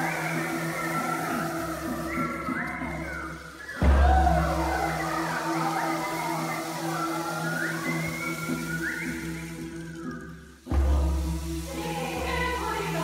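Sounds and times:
choir singing with whooping glides: 0.0 - 13.0.

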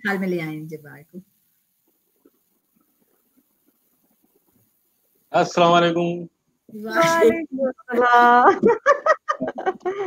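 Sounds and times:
high-pitched voiced exclamation: 6.8 - 8.4
people laughing: 8.0 - 10.0.

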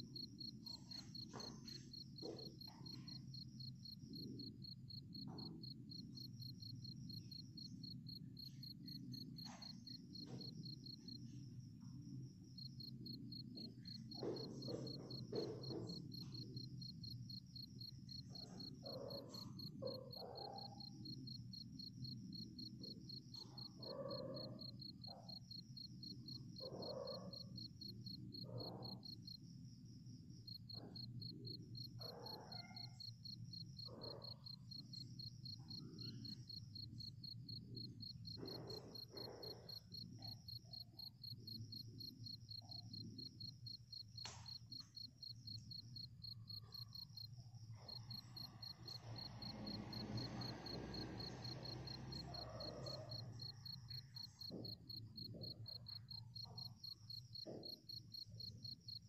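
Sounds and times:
crickets chirping: 0.0 - 59.0.

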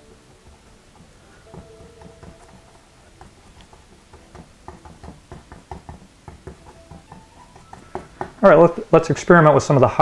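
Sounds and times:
paintbrush dabbing on canvas: 0.0 - 9.1.

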